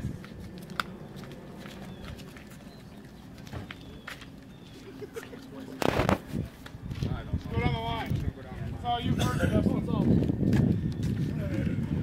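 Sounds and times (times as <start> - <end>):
flip-flop footsteps on wet asphalt: 0.2 - 7.1.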